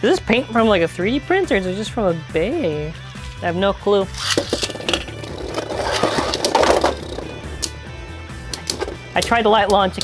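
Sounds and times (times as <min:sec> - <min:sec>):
background music: 0:00.0 - 0:10.0
spinning tops clacking together: 0:04.2 - 0:07.8, 0:08.5 - 0:10.0
spinning tops whirring and grinding: 0:04.2 - 0:07.8.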